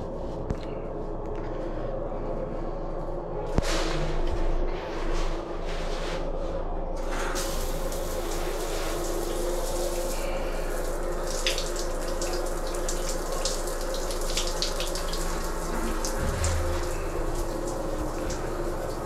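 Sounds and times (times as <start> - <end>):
shower water spraying on tiles: 7.0 - 19.0
water splashes: 15.3 - 19.0.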